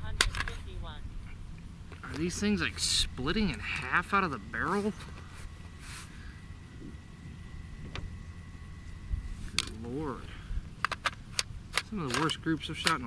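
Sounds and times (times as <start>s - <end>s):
metal objects clicking and clinking: 9.6s - 10.0s, 10.8s - 13.0s.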